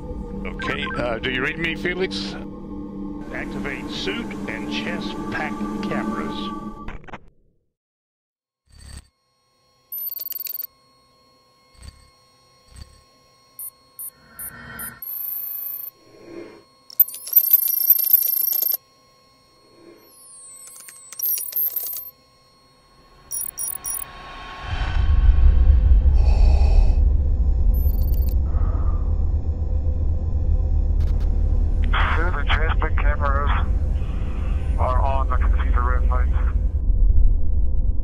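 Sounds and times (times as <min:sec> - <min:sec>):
electronic beeps and chirps: 0:00.5 - 0:01.6, 0:09.9 - 0:10.7, 0:13.6 - 0:16.0, 0:16.9 - 0:18.8, 0:19.9 - 0:22.1, 0:23.3 - 0:24.1, 0:27.8 - 0:28.4
steady low rumble: 0:24.1 - 0:38.0.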